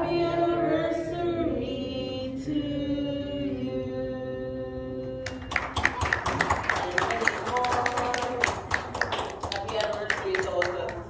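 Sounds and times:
people clapping: 0:05.2 - 0:11.0.

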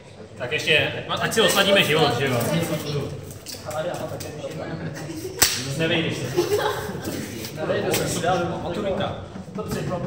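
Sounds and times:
faint murmuring voices: 0:00.0 - 0:10.0
glove snapping: 0:05.4 - 0:05.6.

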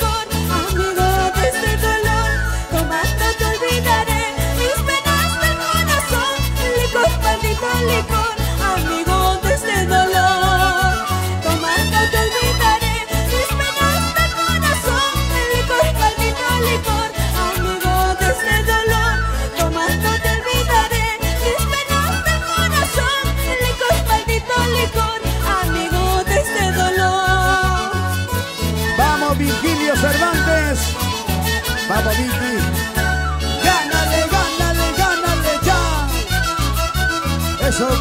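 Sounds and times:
band playing carnival dance music: 0:00.0 - 0:38.0.

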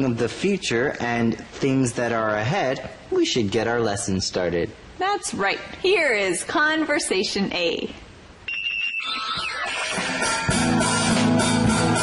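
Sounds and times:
band music: 0:09.7 - 0:12.0.

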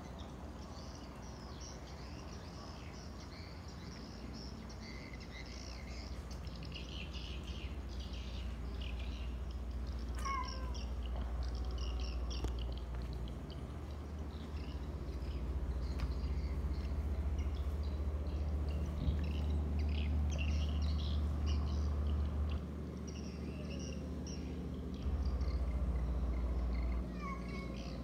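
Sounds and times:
birds chirping: 0:00.0 - 0:28.0
cat meowing: 0:10.2 - 0:10.9, 0:27.1 - 0:28.0.

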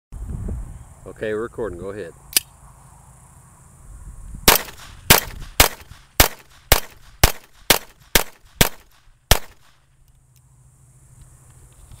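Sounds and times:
pistol shots: 0:04.5 - 0:09.8.

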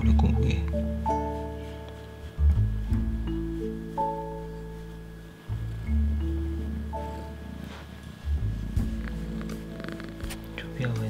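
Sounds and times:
cat purring: 0:00.0 - 0:11.0
light background music: 0:00.0 - 0:11.0.

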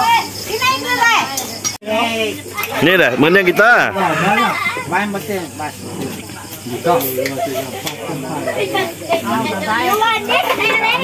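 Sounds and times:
children calling out: 0:00.0 - 0:05.1, 0:07.3 - 0:11.0
group talking over each other: 0:00.0 - 0:11.0.

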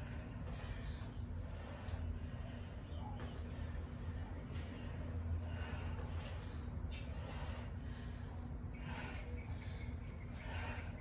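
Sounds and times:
steady low hum: 0:00.0 - 0:11.0
woman breathing hard: 0:00.0 - 0:11.0.

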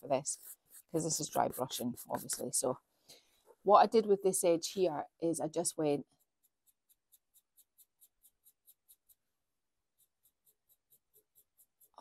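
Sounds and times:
brush strokes scratching: 0:00.0 - 0:02.7, 0:05.6 - 0:12.0.

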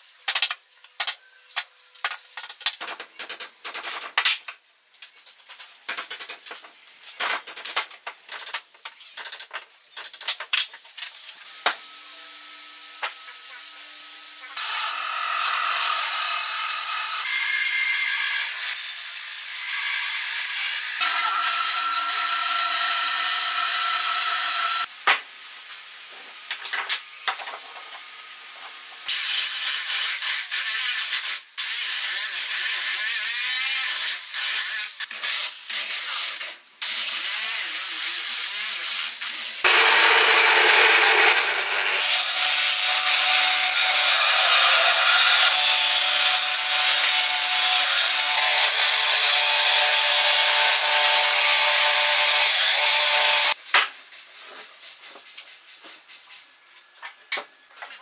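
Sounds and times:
band saw cutting wood: 0:14.5 - 0:24.9, 0:39.3 - 0:53.6
angle grinder sanding wood: 0:39.6 - 0:53.6
spindle sander running: 0:39.7 - 0:42.0.

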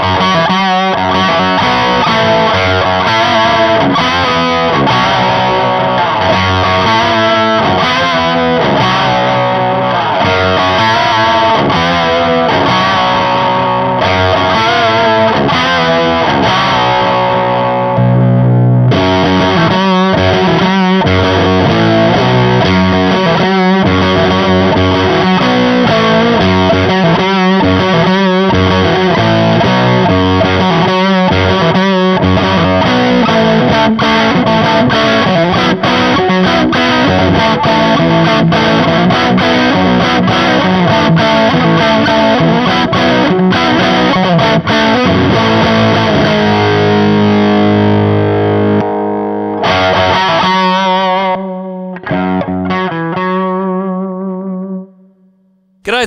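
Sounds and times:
distorted electric guitar riffing: 0:00.0 - 0:54.8.

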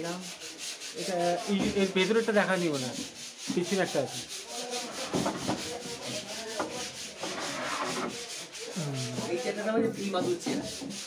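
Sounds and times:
wood being sanded by hand: 0:00.0 - 0:11.0
faint voices: 0:03.6 - 0:10.9.

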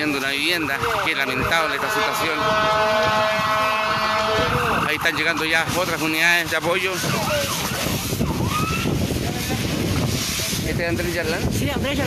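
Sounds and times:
fire roaring and crackling: 0:00.0 - 0:12.0
faint siren wails: 0:01.7 - 0:09.2.

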